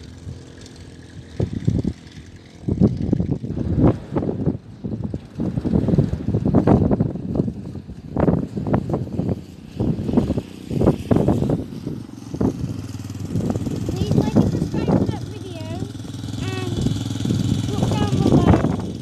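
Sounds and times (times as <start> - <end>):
dirt bike engine idling: 0.0 - 19.0
voices: 13.7 - 18.8.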